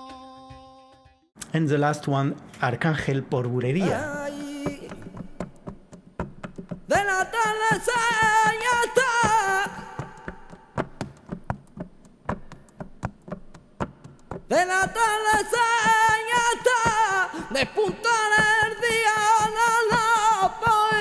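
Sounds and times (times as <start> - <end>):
man singing flamenco: 3.8 - 5.7, 6.8 - 11.1, 14.5 - 21.0.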